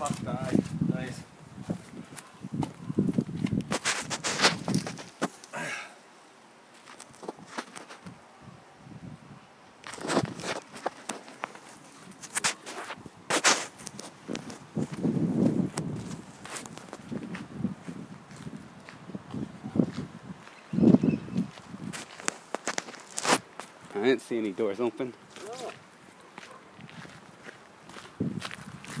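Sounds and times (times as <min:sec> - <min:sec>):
footstep scuffs: 0:00.0 - 0:00.9, 0:01.6 - 0:05.5, 0:06.7 - 0:08.2, 0:09.8 - 0:24.1, 0:25.2 - 0:29.0
footsteps on rough ground: 0:00.0 - 0:05.8, 0:06.7 - 0:08.2, 0:09.8 - 0:29.0.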